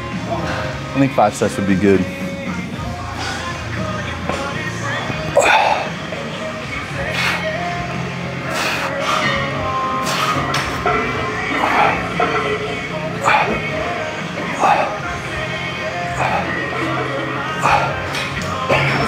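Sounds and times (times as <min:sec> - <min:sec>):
rock music with singing: 0:00.0 - 0:19.0.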